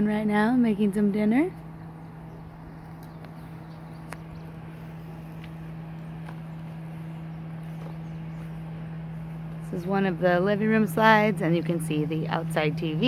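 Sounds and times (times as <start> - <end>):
low hum: 0.0 - 13.0
footsteps on gravel: 2.8 - 10.1.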